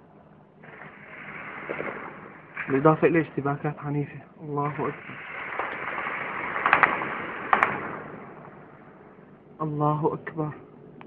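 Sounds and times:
distant gunshots: 0.6s - 3.8s, 4.6s - 9.5s
rushing noise: 0.6s - 9.8s.

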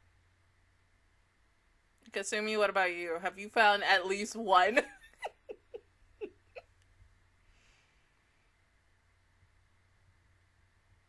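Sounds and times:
woman laughing softly: 4.8s - 6.7s.

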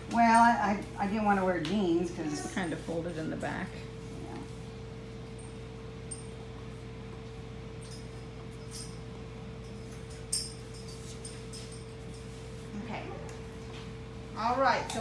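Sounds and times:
steady hum: 0.0s - 15.0s.

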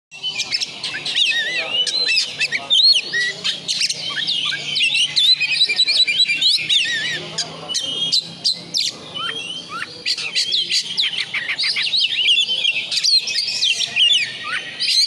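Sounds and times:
bird singing: 0.1s - 15.0s.

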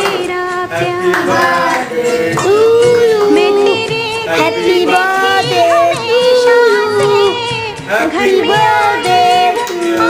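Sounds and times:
high singing voice: 0.0s - 10.0s.

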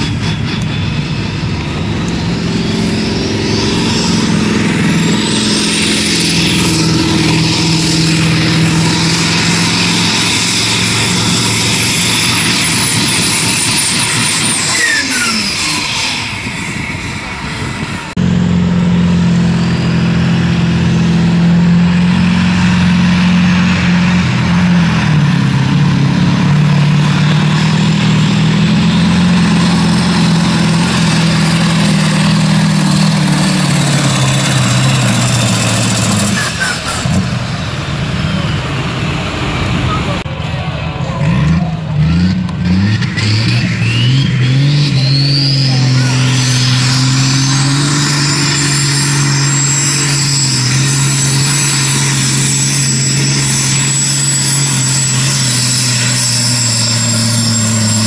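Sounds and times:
diesel truck engines under load: 0.0s - 58.0s.

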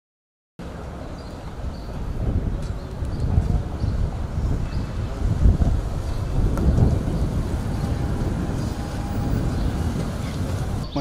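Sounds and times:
street traffic passing: 0.6s - 11.0s
wind buffeting microphone: 0.7s - 11.0s.

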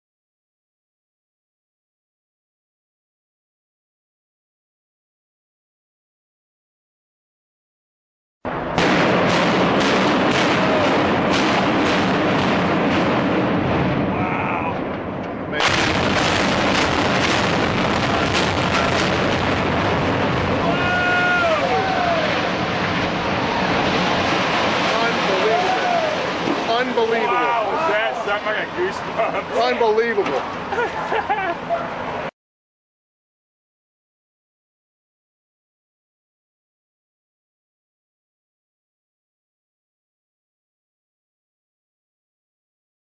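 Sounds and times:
building collapsing roar: 8.5s - 32.3s
people shouting and crying: 14.2s - 14.8s, 20.6s - 22.5s, 25.2s - 28.2s.

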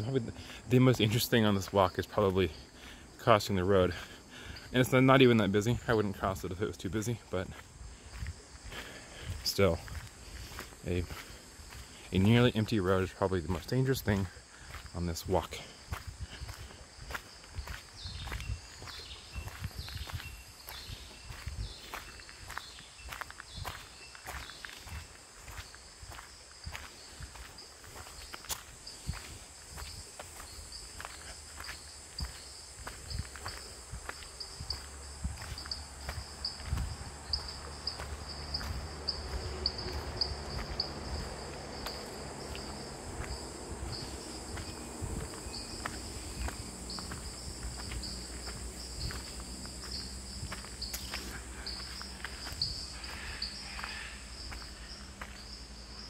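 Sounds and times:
insects buzzing: 0.0s - 56.0s
footsteps on gravel: 4.8s - 56.0s.

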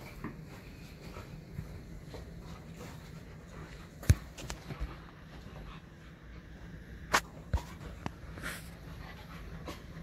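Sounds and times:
dog breathing and snuffling: 0.0s - 10.0s.

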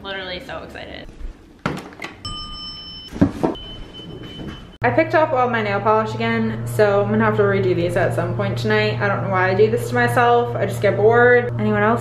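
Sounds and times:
elevator button beep: 2.3s - 4.8s.

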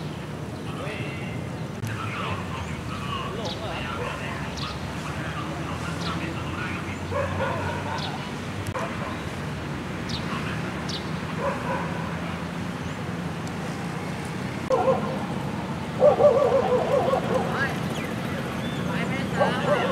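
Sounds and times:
steady outdoor hum: 0.0s - 19.9s
yelping animal calls: 16.0s - 17.6s.

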